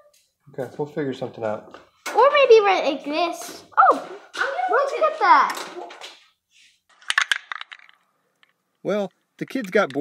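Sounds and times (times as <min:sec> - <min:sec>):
sharp clicks or rattles: 0:07.0 - 0:08.6.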